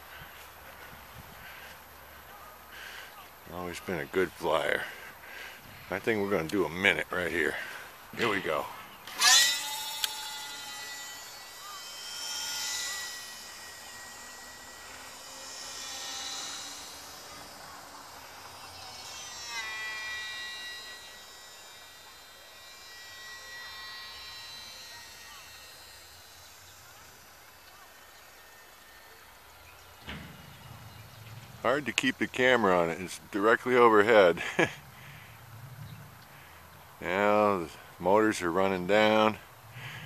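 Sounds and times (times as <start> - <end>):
model plane electric motors whining: 0.0 - 40.0.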